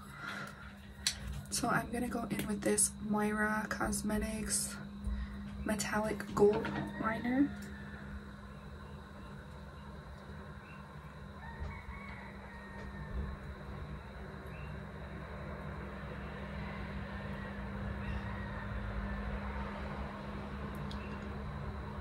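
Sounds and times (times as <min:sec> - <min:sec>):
low hum: 0:00.0 - 0:22.0
distant rooster crowing: 0:06.2 - 0:09.5, 0:10.4 - 0:22.0
road noise: 0:15.0 - 0:22.0.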